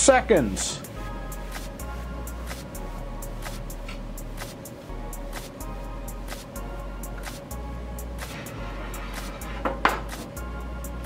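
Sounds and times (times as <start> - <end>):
background music with steady beat: 0.0 - 11.0
skillet knocking on wooden board: 9.6 - 10.3.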